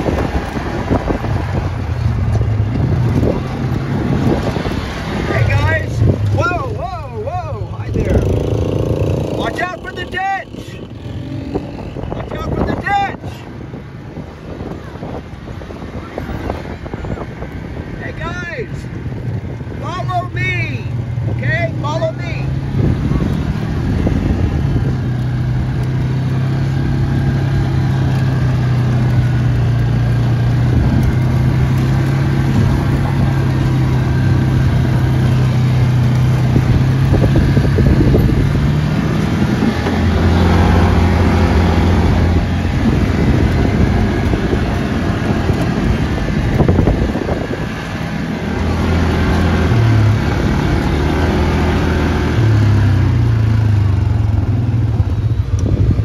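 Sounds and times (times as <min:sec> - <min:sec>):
atv engine running: 0:00.0 - 0:56.0.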